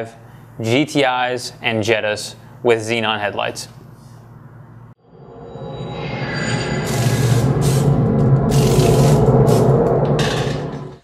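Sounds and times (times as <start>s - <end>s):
intro music sting: 6.0s - 10.7s.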